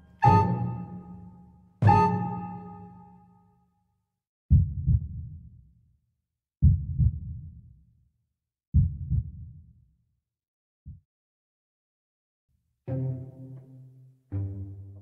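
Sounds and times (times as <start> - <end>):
deep drum beats in pairs: 4.5 - 5.4, 6.6 - 7.6, 8.8 - 9.6.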